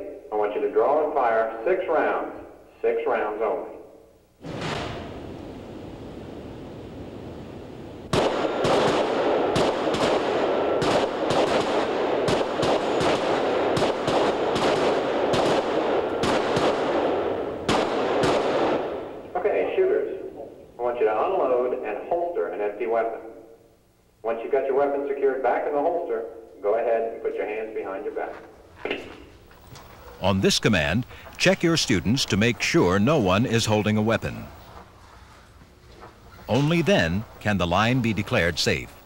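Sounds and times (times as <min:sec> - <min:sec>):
echoing handgun shots: 0:08.1 - 0:19.3.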